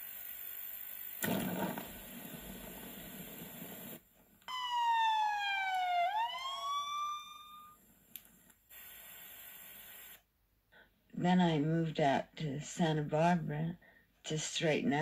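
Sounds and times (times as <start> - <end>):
hiss: 0.0 - 4.0
siren-like wail: 4.5 - 7.8.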